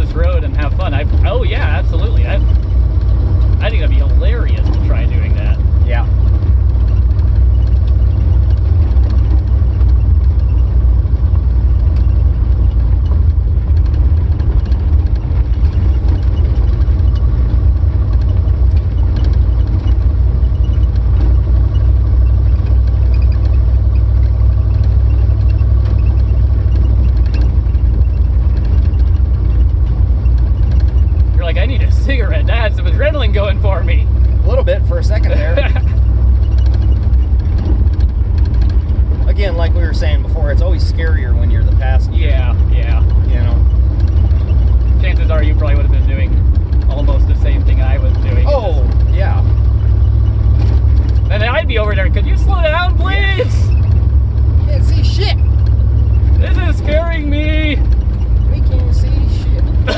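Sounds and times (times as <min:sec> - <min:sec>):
car driving on dirt road: 0:00.0 - 0:59.9.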